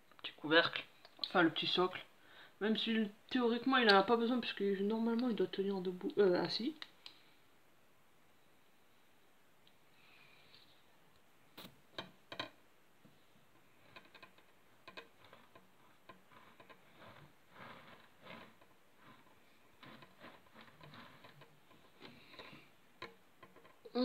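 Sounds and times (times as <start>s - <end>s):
turntable clicking and rubbing: 13.8s - 23.9s.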